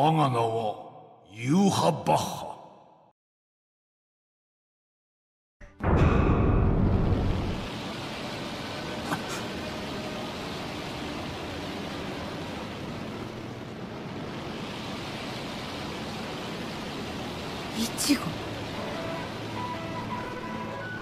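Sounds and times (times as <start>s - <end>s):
low rumble: 5.8s - 8.2s
heavy rain: 6.5s - 21.0s.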